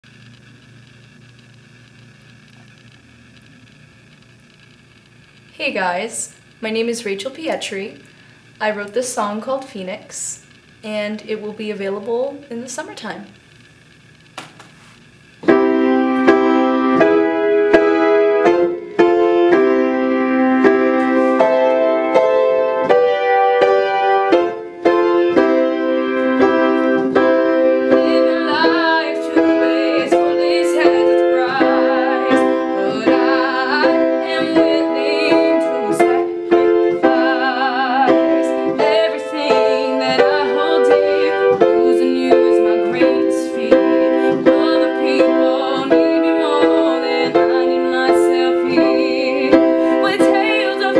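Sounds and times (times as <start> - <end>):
piano chord ringing: 15.4 - 50.9
woman singing with vibrato: 27.6 - 50.9.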